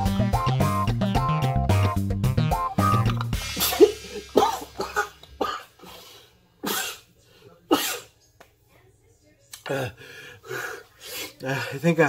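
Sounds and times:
guitar music: 0.0s - 5.4s
man coughing: 3.5s - 6.0s, 6.6s - 7.1s, 7.7s - 8.1s.

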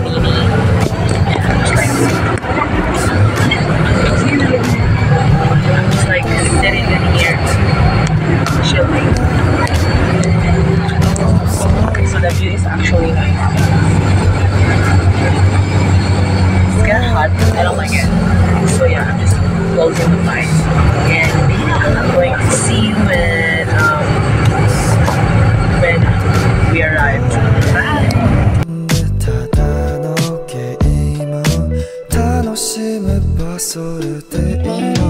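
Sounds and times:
road noise: 0.0s - 30.2s
bus engine drone: 0.0s - 32.4s
voices: 0.0s - 35.0s.

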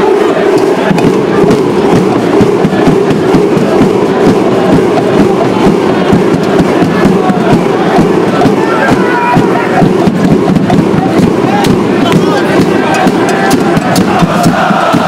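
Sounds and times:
crowd chanting and singing: 0.0s - 15.0s.

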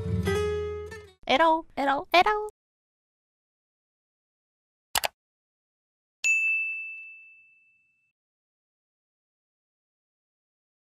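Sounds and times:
bright bell ding: 6.2s - 8.1s.

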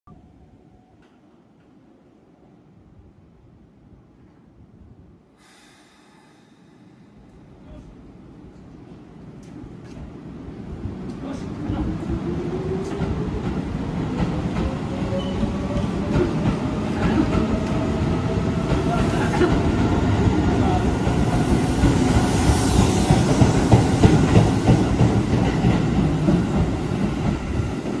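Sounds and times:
electric train running rumble: 5.9s - 28.0s.

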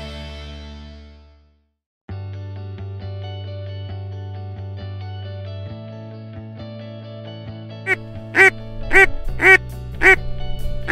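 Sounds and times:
background music: 2.2s - 10.9s
duck quacking: 7.9s - 10.3s.

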